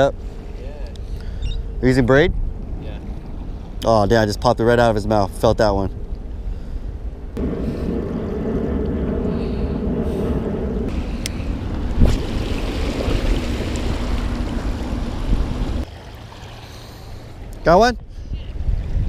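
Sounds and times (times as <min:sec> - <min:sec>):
wind on microphone: 0:00.0 - 0:15.9, 0:17.8 - 0:19.0
steady low hum: 0:00.0 - 0:18.2.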